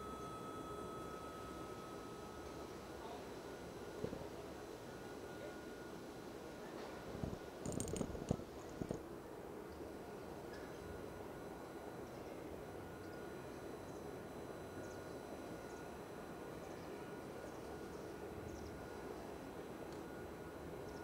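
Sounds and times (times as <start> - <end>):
low hum: 0.0 - 5.8.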